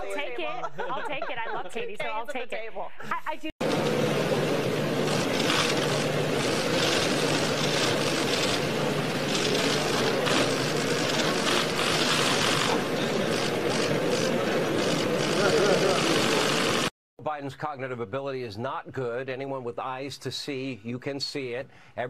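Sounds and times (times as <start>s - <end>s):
crowd chattering: 3.7s - 16.9s.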